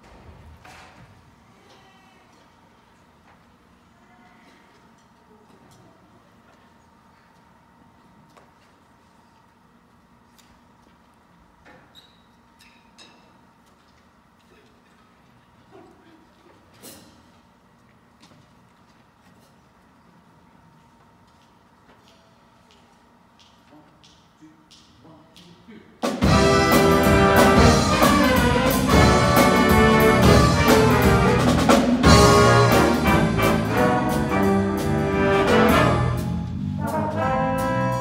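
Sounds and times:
jazz big band playing: 0:26.0 - 0:38.0.

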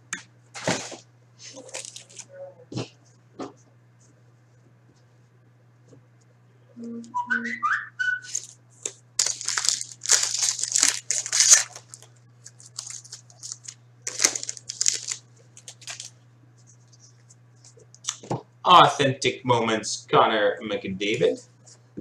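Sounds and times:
foil pack tearing and crinkling: 0:00.6 - 0:02.3, 0:08.3 - 0:16.1
short whistle-like tones: 0:06.9 - 0:08.3.

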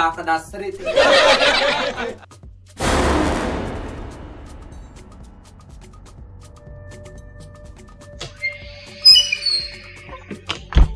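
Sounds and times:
logo sting music: 0:02.8 - 0:05.6.

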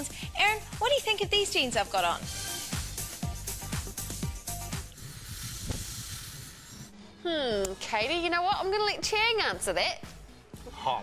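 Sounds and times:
steady hiss: 0:02.4 - 0:07.0.

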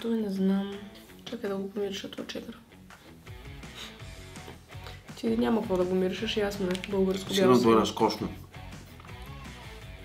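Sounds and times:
quiet guitar music: 0:00.0 - 0:10.0.

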